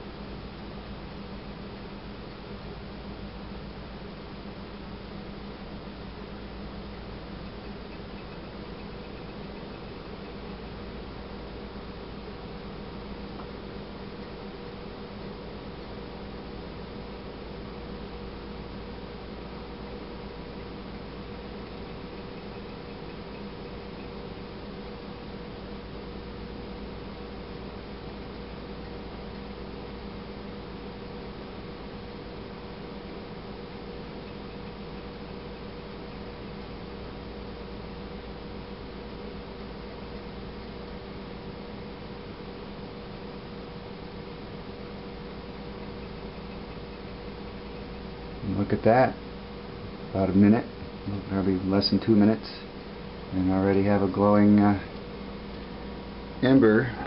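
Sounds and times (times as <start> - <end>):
steady low hum: 0.0 - 57.0.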